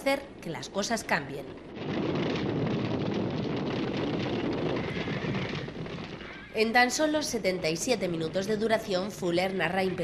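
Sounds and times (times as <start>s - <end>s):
horses galloping: 1.4s - 9.3s.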